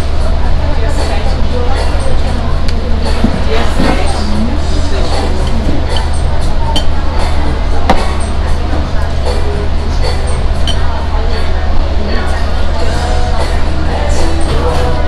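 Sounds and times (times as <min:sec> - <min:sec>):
background music: 0:00.0 - 0:15.0
background voices: 0:00.0 - 0:15.0
restaurant hum: 0:00.0 - 0:15.0.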